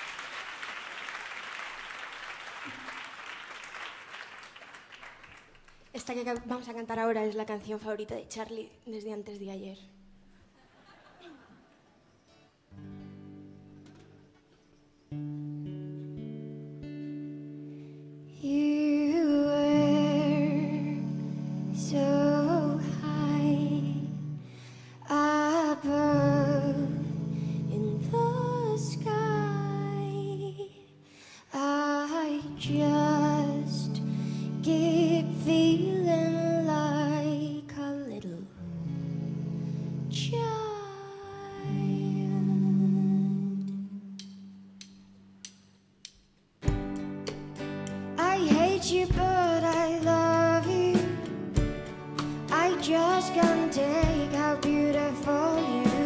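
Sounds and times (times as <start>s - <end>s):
acoustic guitar: 10.0s - 45.5s, 46.6s - 56.0s
woman singing into a microphone: 18.3s - 44.2s, 48.1s - 51.6s, 52.3s - 56.0s
live band music: 46.6s - 56.0s.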